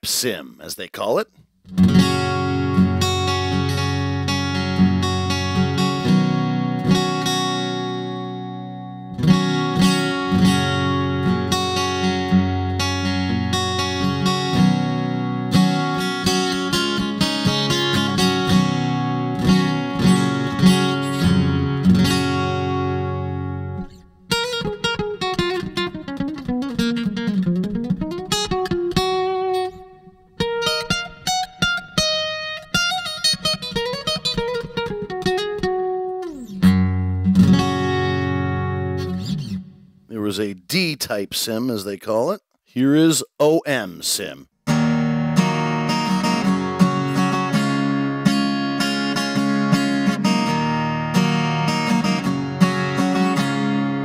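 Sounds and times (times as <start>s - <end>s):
acoustic guitar strummed chords: 1.6s - 40.9s, 43.7s - 54.0s
guitar single-note picking with slide: 1.7s - 39.8s, 44.7s - 54.0s.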